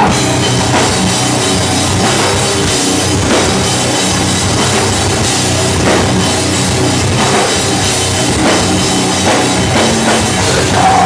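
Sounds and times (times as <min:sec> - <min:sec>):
metal band playing: 0:00.0 - 0:11.0.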